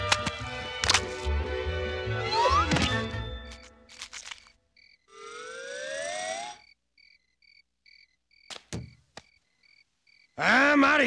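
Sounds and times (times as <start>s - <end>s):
cricket chirps: 4.0s - 11.0s.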